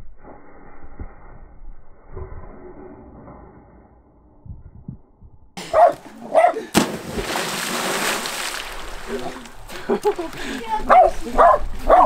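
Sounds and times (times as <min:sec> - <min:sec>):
dog barking: 0:05.7 - 0:06.7, 0:10.8 - 0:12.0
body splashing into pool: 0:06.7 - 0:10.4.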